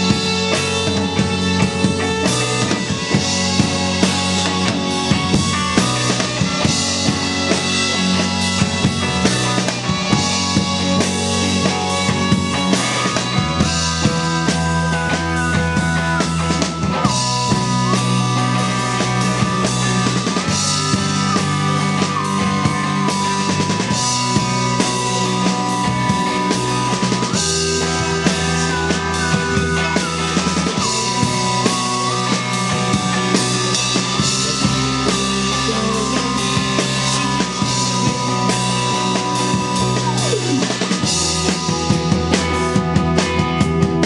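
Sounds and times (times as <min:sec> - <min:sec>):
held high melody note: 0:00.0 - 0:42.8
drum kit beat: 0:00.0 - 0:44.0
sustained bass notes: 0:00.0 - 0:44.0.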